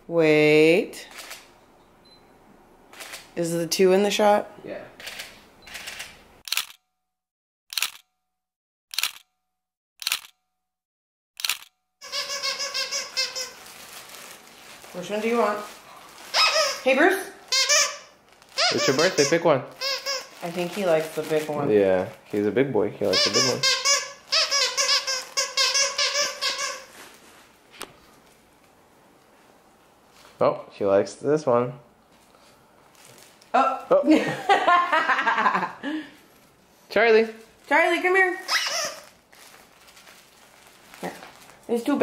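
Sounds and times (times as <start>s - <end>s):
camera shutter clicks: 1.1s - 1.5s, 2.9s - 3.3s, 5.0s - 6.8s, 7.7s - 8.1s, 8.9s - 9.3s, 10.0s - 10.4s, 11.4s - 11.8s
dog toy squeaking: 12.0s - 13.7s, 16.3s - 20.5s, 23.1s - 26.9s, 38.4s - 39.2s.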